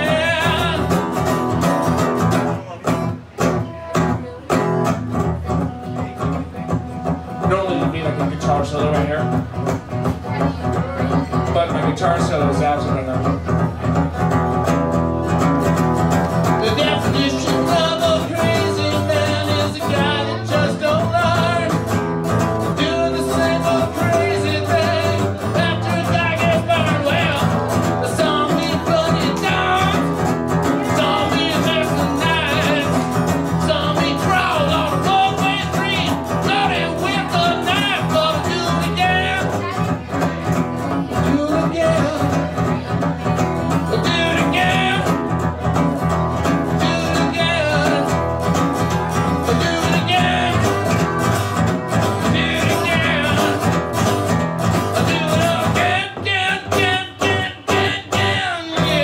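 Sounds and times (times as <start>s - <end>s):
man singing: 0.0s - 3.1s, 5.4s - 9.5s, 16.3s - 59.0s
strummed acoustic guitar: 0.0s - 59.0s.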